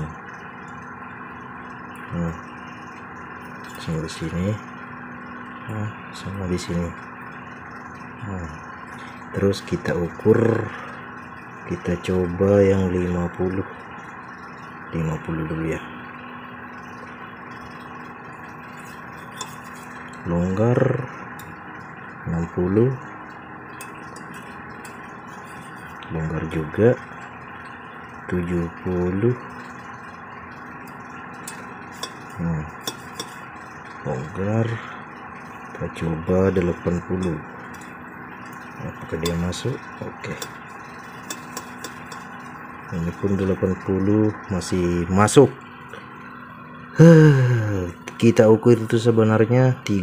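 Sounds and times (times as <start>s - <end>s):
constant low tone: 0.0s - 50.0s
machinery humming: 0.0s - 50.0s.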